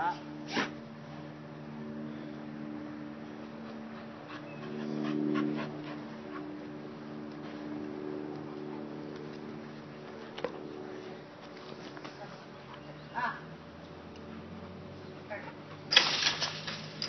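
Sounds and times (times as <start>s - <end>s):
steady low hum: 0.0s - 17.0s
dogs whimpering and panting: 3.3s - 6.9s, 14.2s - 15.9s.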